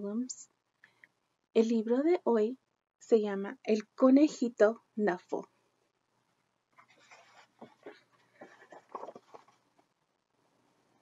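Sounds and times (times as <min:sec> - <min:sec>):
book pages rustling and scraping: 0:06.8 - 0:09.9.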